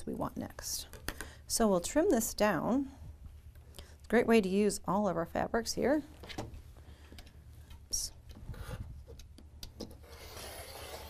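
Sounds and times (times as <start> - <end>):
rotary cutter rasping through fabric: 10.0 - 11.0.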